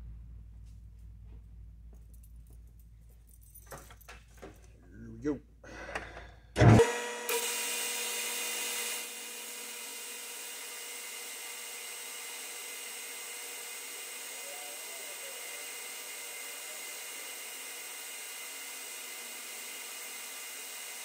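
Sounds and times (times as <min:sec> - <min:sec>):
lathe whining while cutting metal: 0:06.6 - 0:21.0.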